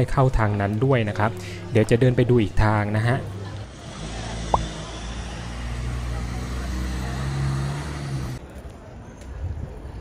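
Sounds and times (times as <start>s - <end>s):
vehicle engine rumbling: 3.2s - 8.4s.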